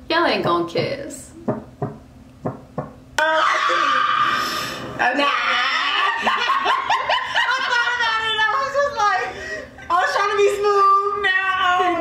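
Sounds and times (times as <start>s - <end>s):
heartbeat thumps: 1.4s - 3.0s.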